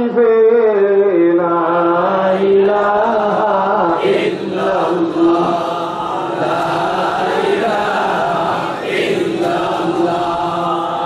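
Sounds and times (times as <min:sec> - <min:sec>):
male voices chanting: 0:01.8 - 0:11.0.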